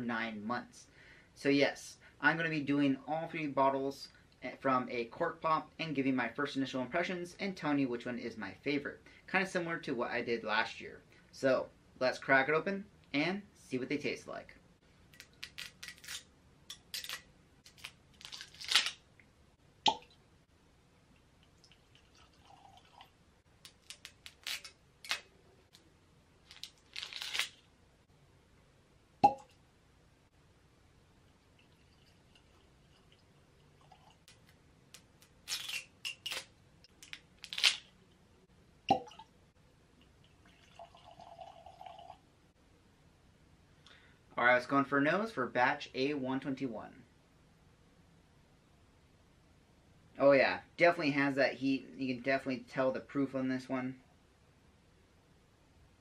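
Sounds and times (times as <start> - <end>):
cork popping: 19.8 - 20.1, 29.2 - 29.6, 38.9 - 39.3
whiskey pouring into glasses: 21.6 - 23.1, 31.6 - 34.2, 40.2 - 42.2.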